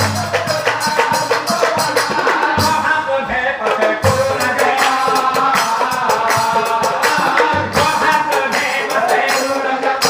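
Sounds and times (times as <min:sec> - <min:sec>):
drums and cymbals striking: 0:00.0 - 0:10.0.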